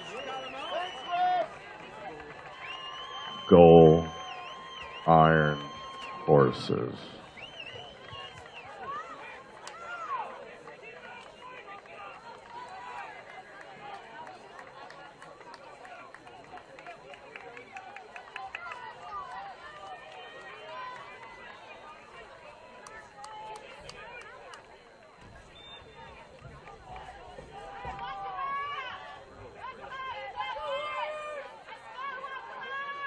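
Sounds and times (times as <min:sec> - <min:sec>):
distant shouts of players and spectators: 0:00.0 - 0:33.0.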